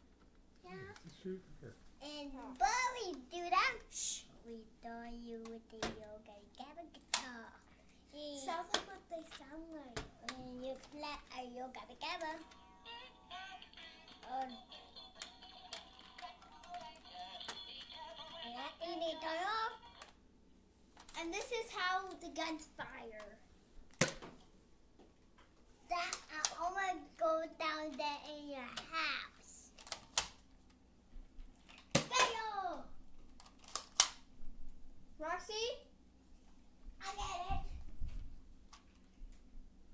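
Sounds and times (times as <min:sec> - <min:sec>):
toy guitar electronic tune: 0:12.4 - 0:18.4
plastic toy blaster clicks: 0:33.4 - 0:34.2.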